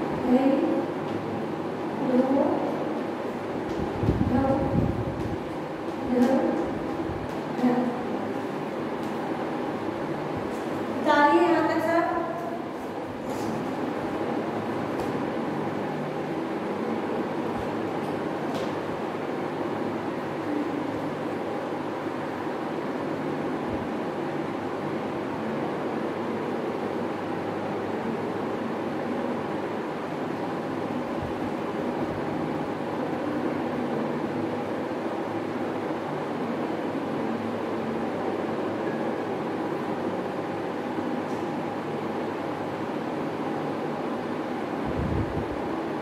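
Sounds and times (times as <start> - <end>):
steady mechanical drone: 0.0 - 46.0.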